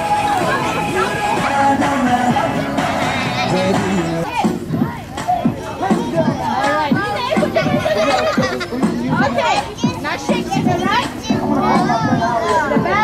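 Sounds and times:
background music: 0:00.0 - 0:13.0
children talking and calling out: 0:00.0 - 0:13.0.

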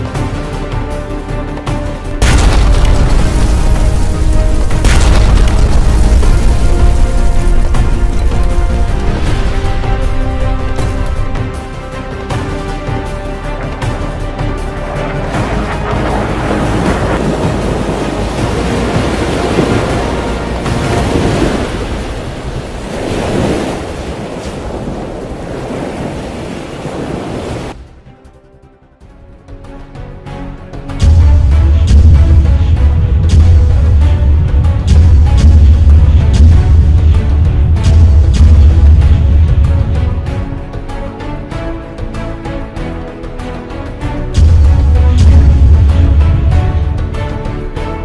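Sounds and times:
dramatic background music: 0:00.0 - 0:26.1, 0:27.7 - 0:48.0
churning water: 0:00.0 - 0:27.8, 0:30.7 - 0:48.0
explosion boom with deep rumble: 0:02.2 - 0:09.8, 0:44.4 - 0:47.0.

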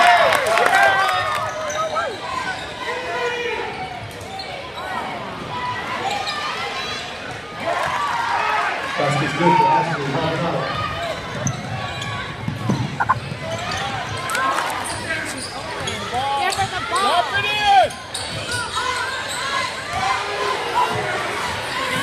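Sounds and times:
crowd and player voices calling: 0:00.0 - 0:22.0.

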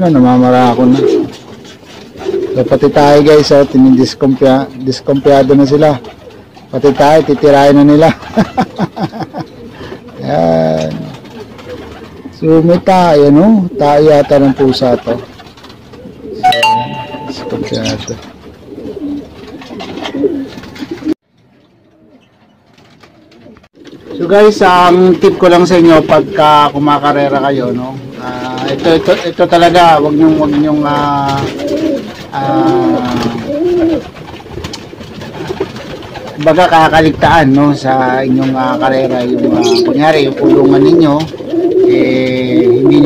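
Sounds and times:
pigeons cooing: 0:00.0 - 0:16.5, 0:17.5 - 0:21.2, 0:21.9 - 0:43.0
bell-like ding: 0:16.4 - 0:17.9.

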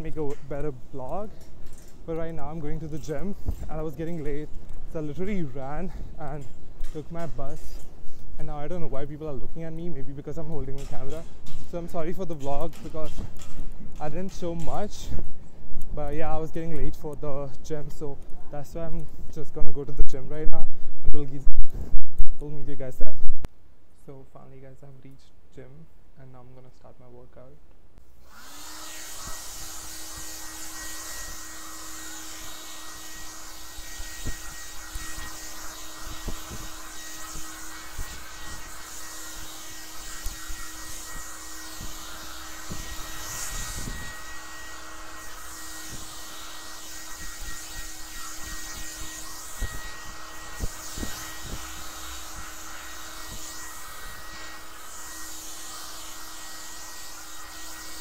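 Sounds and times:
electric hair trimmer buzzing: 0:28.2 - 0:58.0.

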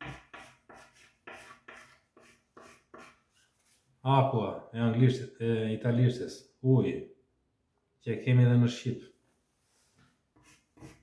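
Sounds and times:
chalk scratching on blackboard: 0:00.0 - 0:03.9, 0:10.4 - 0:11.0.

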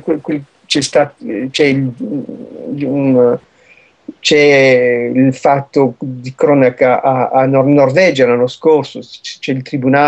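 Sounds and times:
man's drawn-out hesitation sound: 0:00.0 - 0:10.0.

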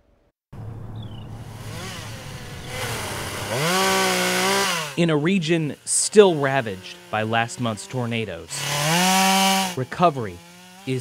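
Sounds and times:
small engine idling and revving: 0:00.6 - 0:11.0.

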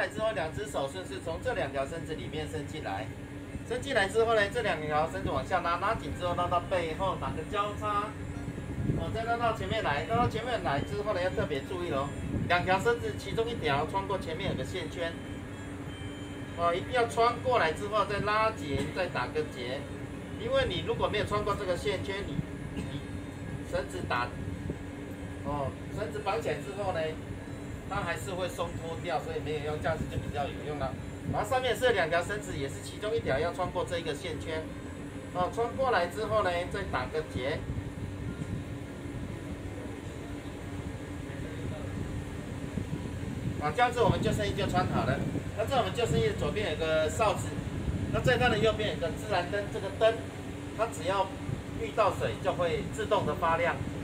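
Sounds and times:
boat engine low hum: 0:00.0 - 0:54.0
faint steady tone: 0:10.3 - 0:18.6.

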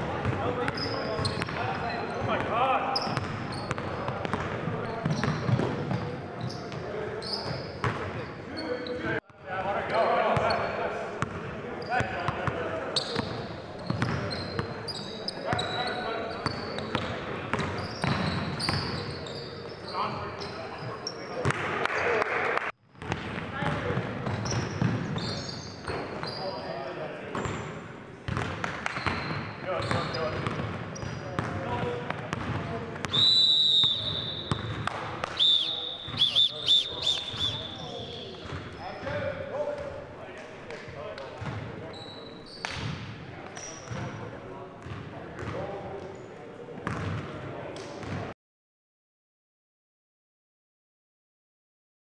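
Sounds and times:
sneakers squeaking: 0:00.0 - 0:09.2, 0:09.9 - 0:21.7, 0:23.0 - 0:40.2, 0:40.8 - 0:47.4, 0:48.0 - 0:48.3
basketball bouncing on wooden floor: 0:28.3 - 0:29.3, 0:30.3 - 0:32.7
indistinct voices echoing: 0:33.8 - 0:40.6.

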